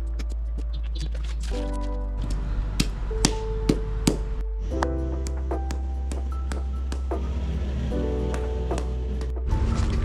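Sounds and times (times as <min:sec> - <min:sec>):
background music: 0:00.0 - 0:10.0
mallet pounding on wet concrete: 0:05.3 - 0:07.3, 0:08.3 - 0:09.4.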